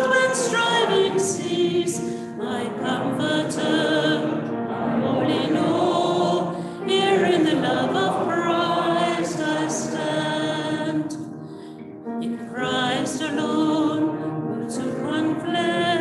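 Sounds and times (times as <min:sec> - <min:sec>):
congregation singing a hymn: 0:00.0 - 0:11.5, 0:12.2 - 0:16.0.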